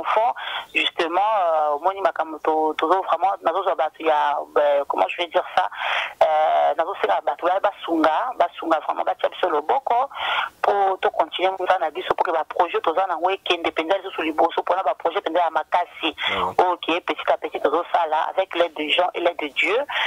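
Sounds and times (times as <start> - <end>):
speech over a telephone line: 0.0 - 20.0.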